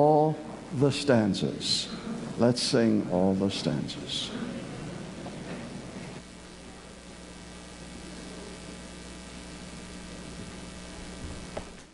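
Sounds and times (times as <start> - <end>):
low electrical hum and hiss: 0.0 - 11.9.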